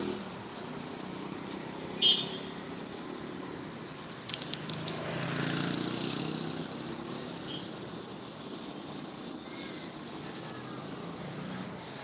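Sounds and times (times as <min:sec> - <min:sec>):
quick clicks: 0:04.1 - 0:05.2
vehicle engine passing: 0:04.7 - 0:07.1.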